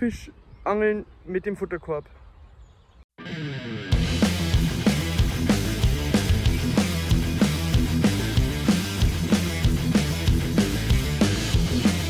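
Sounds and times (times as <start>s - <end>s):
faint outdoor background: 0.0s - 12.0s
intro music with loud beat: 3.2s - 12.0s.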